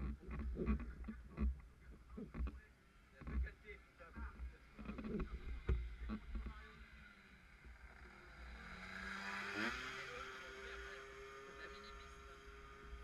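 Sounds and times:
two-stroke scooter engine running: 0:04.4 - 0:13.0.

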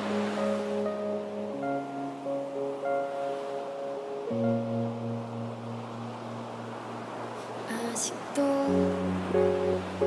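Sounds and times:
slow piano chords: 0:00.0 - 0:10.0
soft steady noisy wash: 0:00.0 - 0:10.0.

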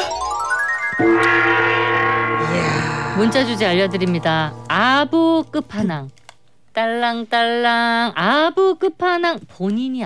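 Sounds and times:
gong-like radio jingle chord: 0:00.9 - 0:05.9.

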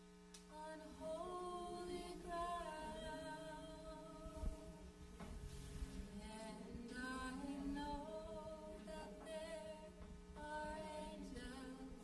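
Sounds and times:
voices singing worship music: 0:00.5 - 0:12.0.

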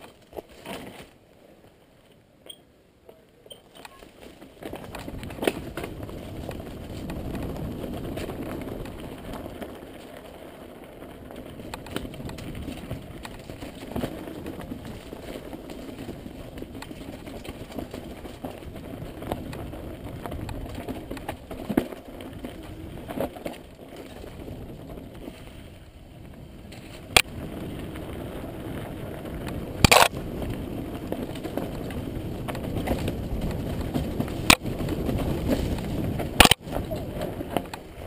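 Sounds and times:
bike rattling over rocky trail: 0:00.0 - 0:01.4, 0:03.5 - 0:38.0.

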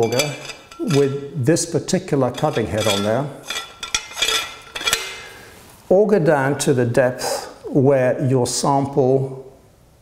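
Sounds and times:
metal auger clinking: 0:00.0 - 0:01.4, 0:02.2 - 0:05.4.

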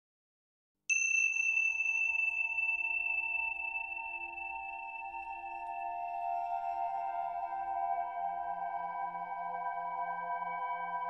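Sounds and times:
metal bell ringing: 0:00.9 - 0:07.2.

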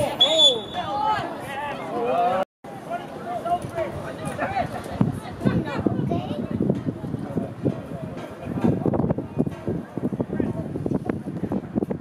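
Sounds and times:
referee's whistle blast: 0:00.2 - 0:01.0.

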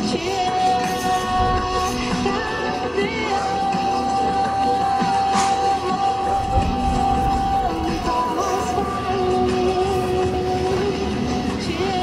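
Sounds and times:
background music with held melody: 0:00.0 - 0:12.0.

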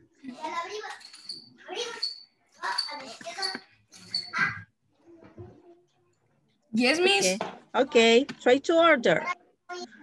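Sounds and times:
child's voice over video call: 0:00.2 - 0:06.2, 0:09.1 - 0:10.0.

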